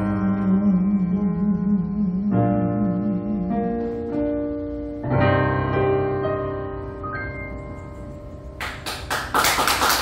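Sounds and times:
audience applause: 0:08.6 - 0:10.0.

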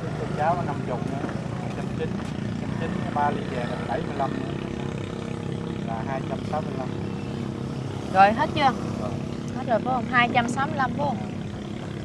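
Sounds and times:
low engine drone: 0:00.0 - 0:12.0.

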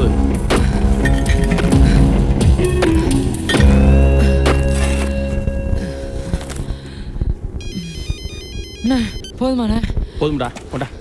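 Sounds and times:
mobile phone ringtone: 0:07.6 - 0:09.4.

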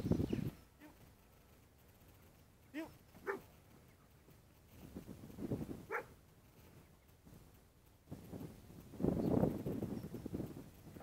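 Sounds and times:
dog barking: 0:03.2 - 0:03.5, 0:05.9 - 0:06.1.

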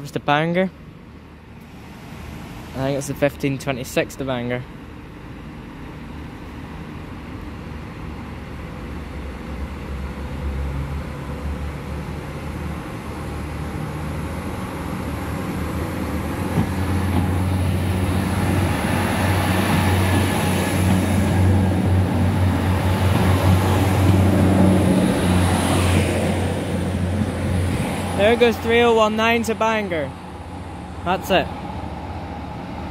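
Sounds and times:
diesel train passing: 0:00.0 - 0:32.9.

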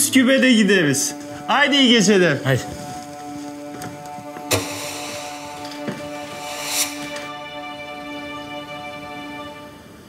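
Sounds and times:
held tones background score: 0:00.0 - 0:09.8
rising swell of noise: 0:01.1 - 0:09.4
sharp knock: 0:04.4 - 0:07.2.

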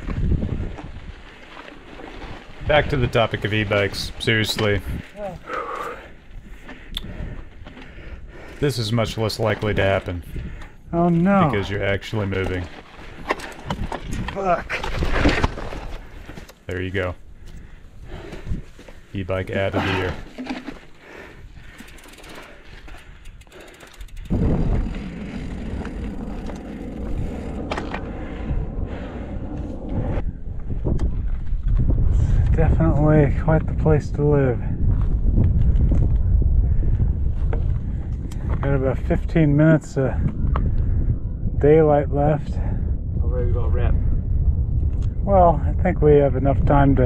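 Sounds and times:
bike tyres rumbling on dirt: 0:00.0 - 0:41.2.

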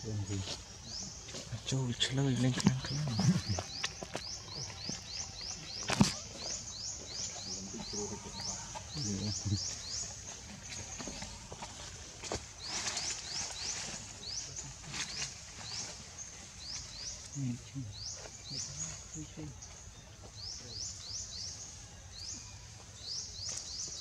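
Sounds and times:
outdoor background: 0:00.0 - 0:24.0.

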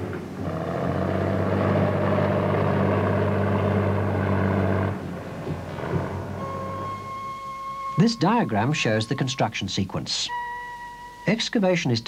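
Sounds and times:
heavy machinery engine drone: 0:00.0 - 0:09.3
high electronic tone: 0:05.6 - 0:09.6, 0:10.2 - 0:11.6.

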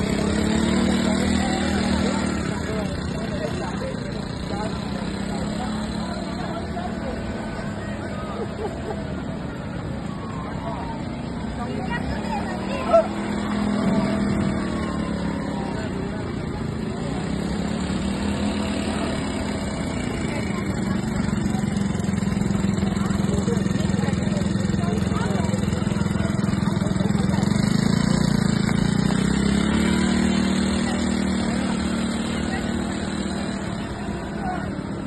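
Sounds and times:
small quad bike engines running: 0:00.0 - 0:35.0
voices: 0:00.0 - 0:35.0.

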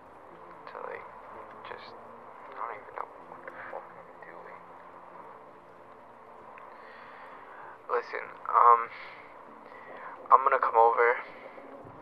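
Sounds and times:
faint background noise: 0:00.0 - 0:12.0
low hum: 0:00.0 - 0:12.0.

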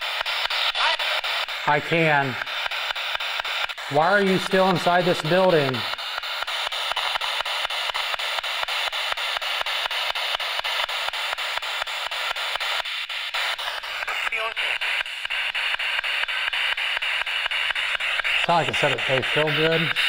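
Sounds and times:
pulsing radio static: 0:00.0 - 0:20.0
snatch of voice: 0:00.4 - 0:02.5, 0:03.8 - 0:06.0, 0:13.4 - 0:15.8, 0:18.3 - 0:20.0.

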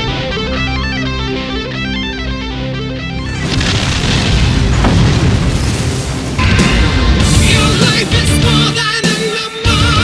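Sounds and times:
heavy rock music: 0:00.0 - 0:10.0
explosion boom with low rumble: 0:03.3 - 0:08.1.

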